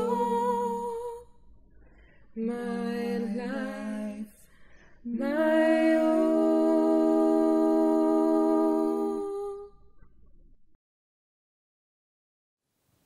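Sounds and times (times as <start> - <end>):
unaccompanied hymn singing: 0.0 - 1.4, 2.2 - 9.8
breath: 1.7 - 2.4, 4.4 - 5.1.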